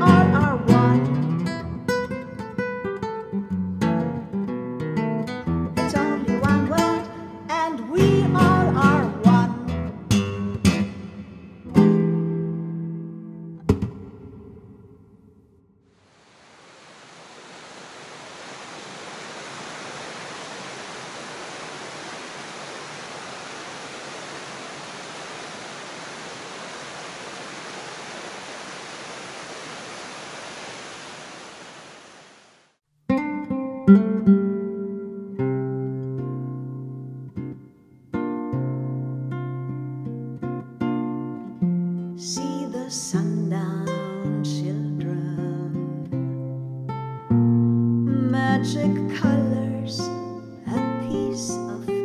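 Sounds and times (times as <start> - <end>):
acoustic guitar playing: 0.0 - 15.3, 33.1 - 52.0
waterfall rushing: 16.0 - 32.8.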